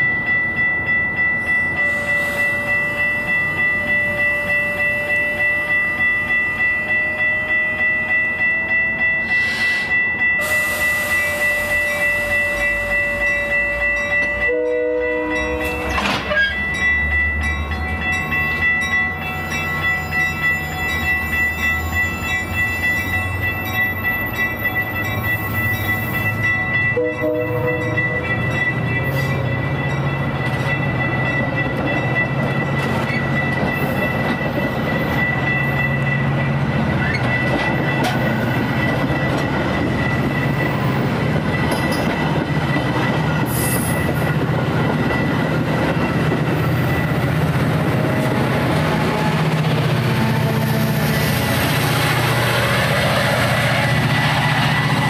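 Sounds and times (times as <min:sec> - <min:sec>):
pulsing high ringing: 0:00.0 - 0:55.0
train wheels clicking over rail joints: 0:15.6 - 0:16.8, 0:36.5 - 0:50.2.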